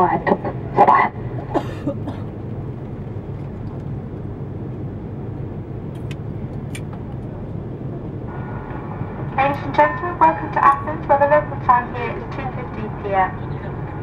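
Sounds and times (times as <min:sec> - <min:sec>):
airplane engines rumbling in cabin: 0:00.0 - 0:14.0.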